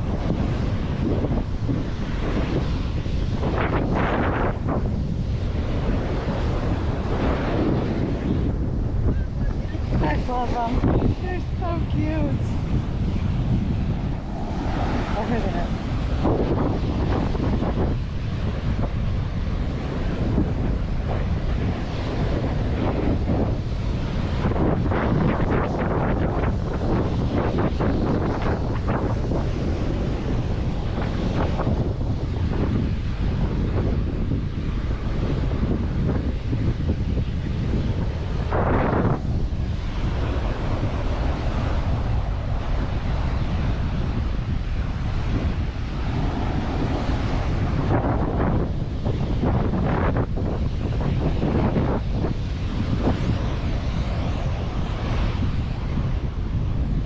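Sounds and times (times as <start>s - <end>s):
waves breaking on beach: 0.0s - 57.0s
wind buffeting microphone: 0.0s - 57.0s.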